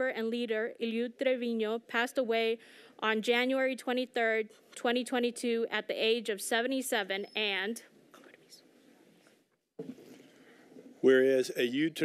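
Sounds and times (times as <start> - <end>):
quiet whispering: 8.1 - 11.7.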